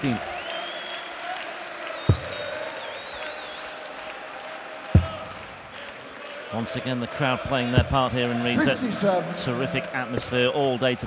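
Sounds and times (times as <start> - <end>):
arena crowd noise: 0.0 - 11.0
shrill whistle: 0.3 - 1.1, 2.0 - 3.8
darts thudding into dartboard: 5.0 - 5.3.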